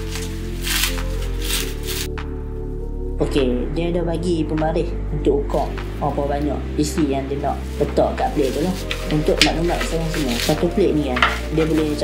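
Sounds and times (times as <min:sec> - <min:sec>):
plastic film crinkling: 0:00.0 - 0:02.1, 0:07.2 - 0:12.0
background music with low notes: 0:00.0 - 0:12.0.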